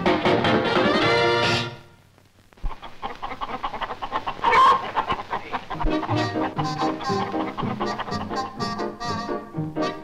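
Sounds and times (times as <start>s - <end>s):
hens clucking: 2.6s - 10.0s.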